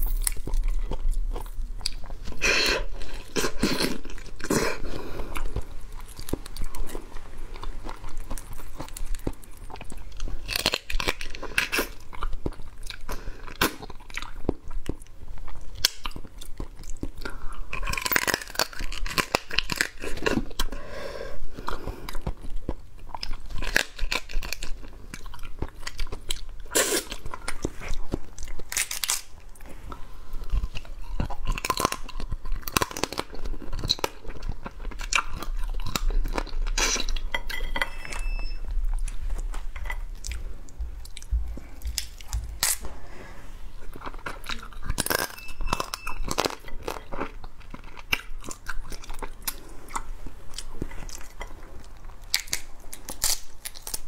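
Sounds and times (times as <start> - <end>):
chewing: 0.0 - 20.8, 21.5 - 54.0
crab shell crunching: 22.2 - 29.6, 43.8 - 54.0.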